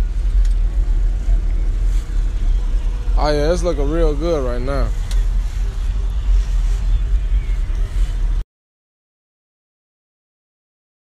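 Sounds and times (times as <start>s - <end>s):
car engines rumbling: 0.0s - 8.4s.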